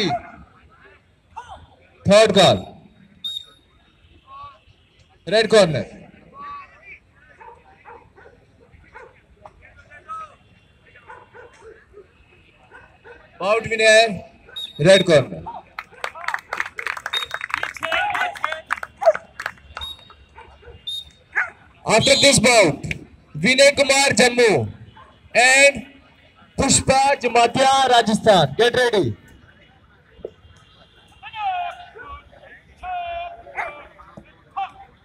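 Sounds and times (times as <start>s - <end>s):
dogs barking rapidly: 7.4s - 9.2s, 11.0s - 11.8s, 18.9s - 19.4s, 20.3s - 21.7s.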